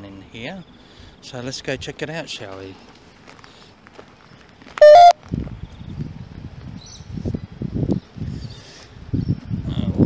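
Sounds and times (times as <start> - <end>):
footsteps on a path: 2.4 - 6.9
two-tone electronic beep: 4.8 - 5.2.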